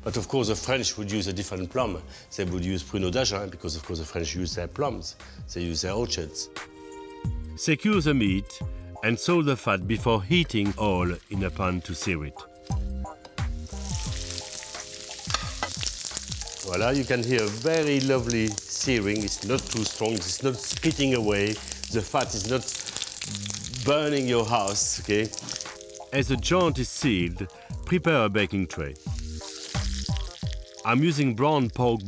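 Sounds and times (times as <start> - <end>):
background music with held notes: 0.0 - 32.0
meat sizzling in a pan: 12.6 - 32.0.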